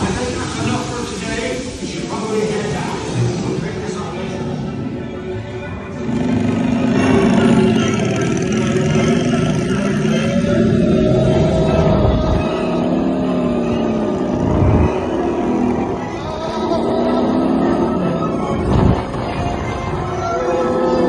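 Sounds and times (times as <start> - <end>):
music playing: 0.0 - 21.0
roller coaster rumbling on track: 0.0 - 21.0
wind: 0.0 - 21.0.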